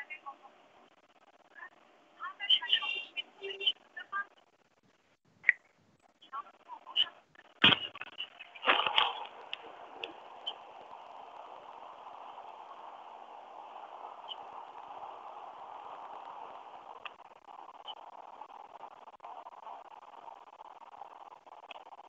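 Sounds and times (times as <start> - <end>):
microphone background hiss: 0.0 - 22.0.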